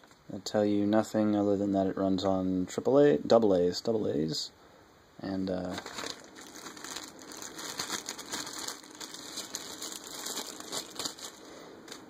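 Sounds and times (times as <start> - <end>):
plastic bag crinkling: 5.6 - 12.0.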